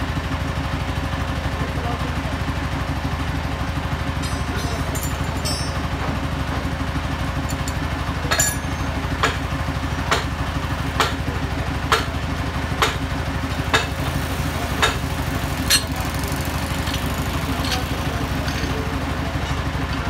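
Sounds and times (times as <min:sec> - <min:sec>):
engine idling: 0:00.0 - 0:20.0.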